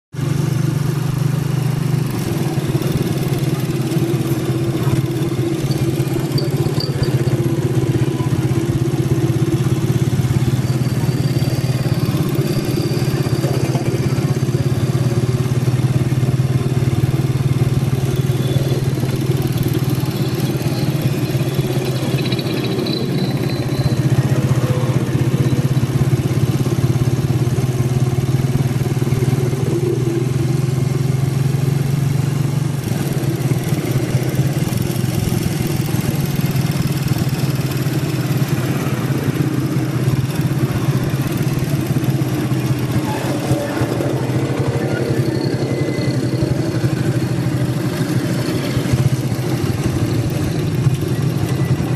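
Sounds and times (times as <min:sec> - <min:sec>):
motorcycle engine running: 0:00.1 - 0:51.9.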